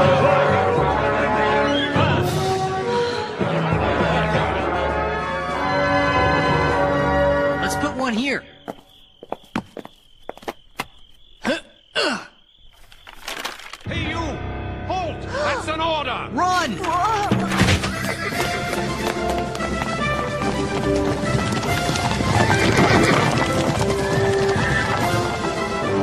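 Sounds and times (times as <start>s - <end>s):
background music: 0.0s - 8.6s, 13.8s - 26.0s
hooves clattering on cobblestones: 8.6s - 11.1s, 16.7s - 26.0s.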